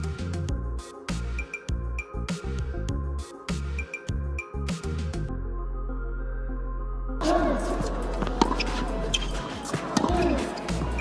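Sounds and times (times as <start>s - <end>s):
music playing: 0.0s - 11.0s
tennis ball hit by racquet: 8.2s - 11.0s.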